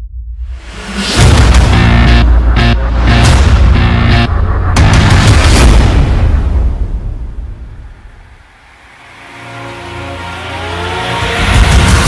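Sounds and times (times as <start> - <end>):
rushing noise: 0.4 - 12.0
engine-like whine rising in pitch: 1.2 - 12.0.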